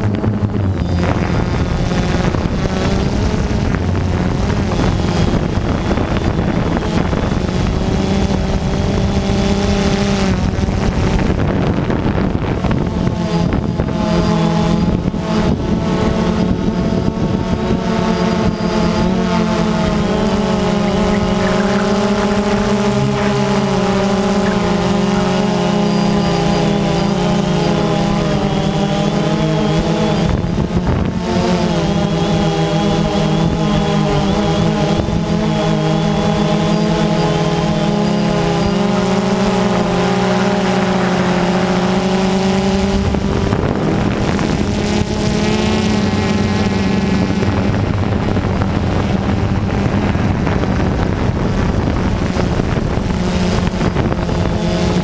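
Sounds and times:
drone motors humming: 0.0s - 55.0s.

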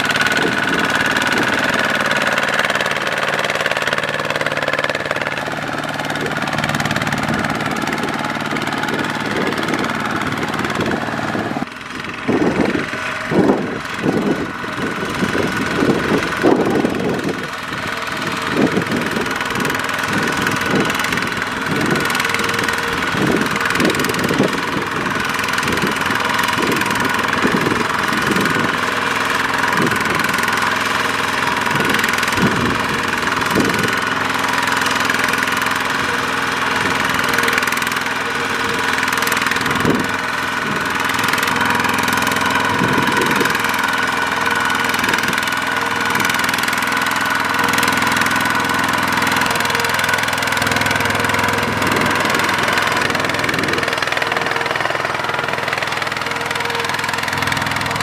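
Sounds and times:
diesel engine knocking under load: 0.0s - 58.0s.

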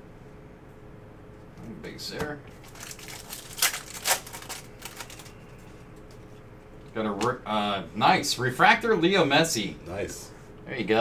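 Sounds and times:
foil wrapper crinkling: 2.5s - 6.2s
cards rustling: 2.5s - 7.3s.

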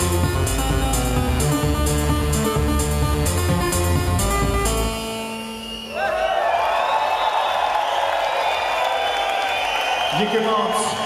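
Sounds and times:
electronic dance music: 0.0s - 5.6s
crowd cheering and clapping: 5.6s - 11.0s.

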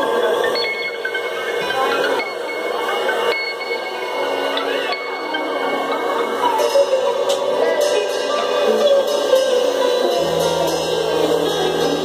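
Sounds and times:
live band playing slow instrumental: 5.6s - 12.0s.

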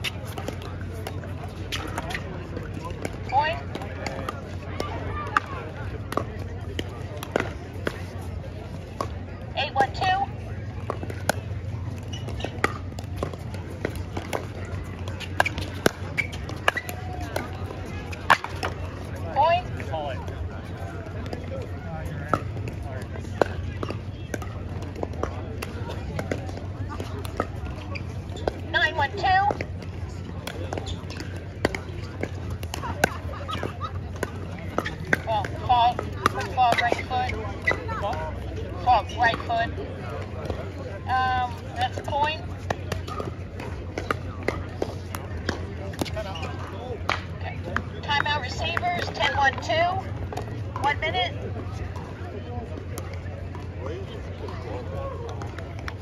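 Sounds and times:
voices: 0.0s - 56.0s.

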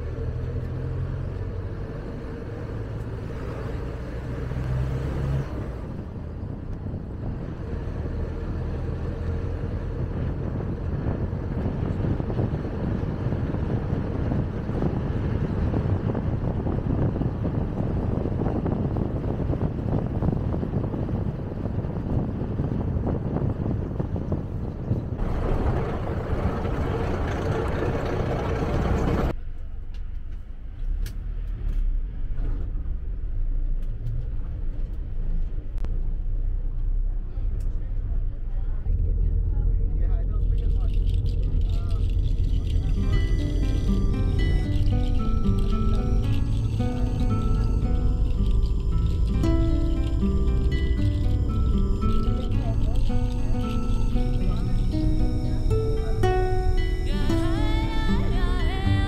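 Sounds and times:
low hum: 0.0s - 59.0s
vehicle road and engine rumble: 0.0s - 59.0s.

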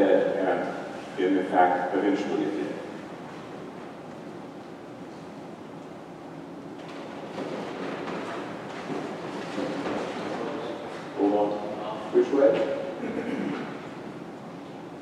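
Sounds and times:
lecture hall room noise: 0.0s - 15.0s.

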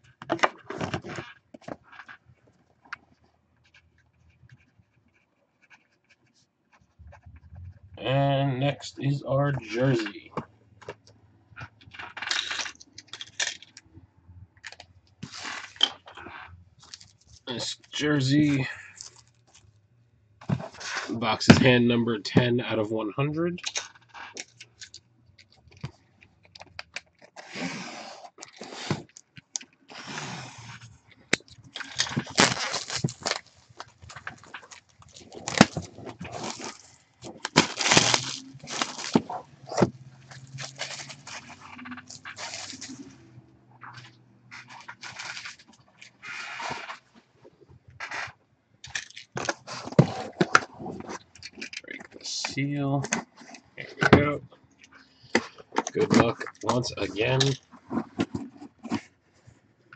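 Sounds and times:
plastic wrap crinkling: 31.3s - 43.2s.

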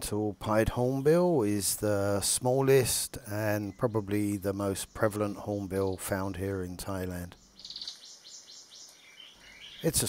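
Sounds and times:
small birds chirping: 0.5s - 10.0s.

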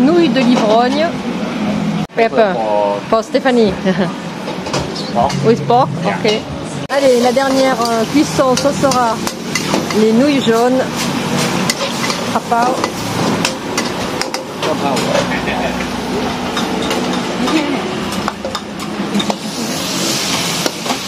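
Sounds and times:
metal utensil scraping a wok: 7.2s - 14.5s
noodles sizzling in a wok: 19.2s - 21.0s.

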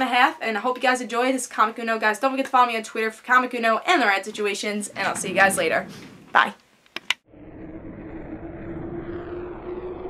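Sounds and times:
spacecraft engine drone: 7.3s - 10.0s.

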